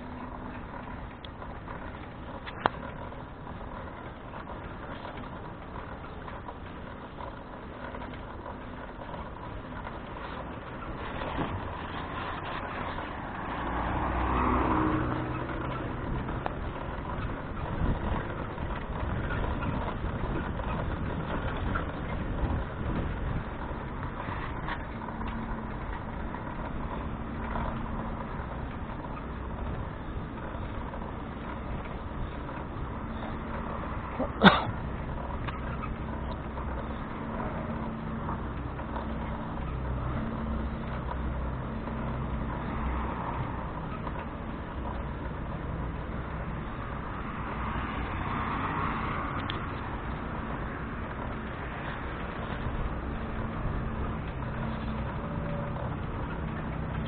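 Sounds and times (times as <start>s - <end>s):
traffic and riding rumble: 0.0s - 57.0s.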